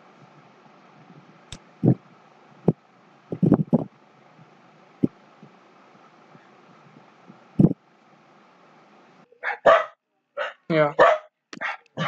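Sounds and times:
faint steady hum: 0.0 - 12.0
dog barking: 9.4 - 12.0.

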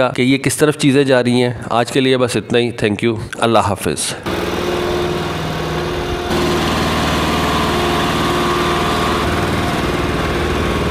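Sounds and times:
small engine running: 4.3 - 10.9.

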